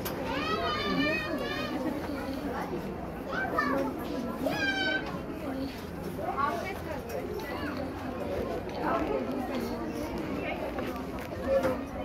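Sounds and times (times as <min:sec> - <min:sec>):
children calling out: 0:00.0 - 0:02.5, 0:03.3 - 0:05.2
crowd chatter: 0:00.0 - 0:12.0.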